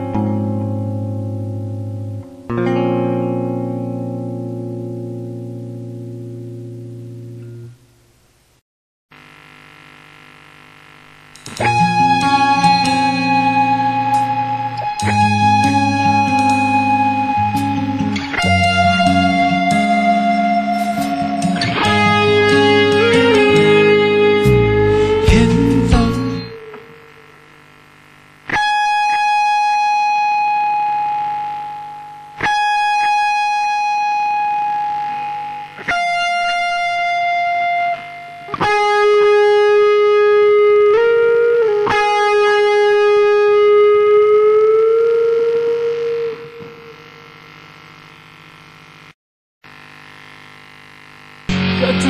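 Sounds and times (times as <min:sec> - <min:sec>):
distorted electric guitar notes: 0:00.0 - 0:07.8, 0:11.1 - 0:47.9, 0:51.4 - 0:52.0
faint amplifier hum: 0:00.0 - 0:52.0.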